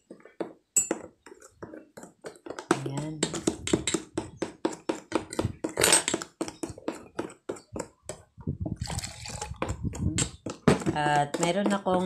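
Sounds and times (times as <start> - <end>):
metal utensil stirring batter: 0.0 - 12.0.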